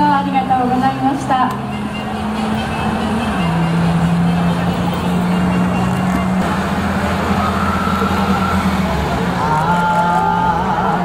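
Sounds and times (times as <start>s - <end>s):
old cars driving slowly: 0.0s - 11.0s.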